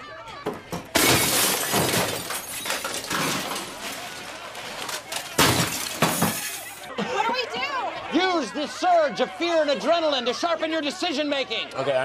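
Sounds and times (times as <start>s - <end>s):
broken glass falling: 0.9s - 6.9s
glass shattering: 0.9s - 6.9s.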